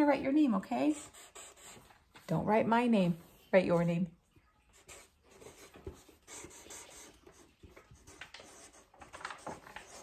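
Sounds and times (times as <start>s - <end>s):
marker scratching on paper: 0.7s - 2.4s, 4.7s - 10.0s.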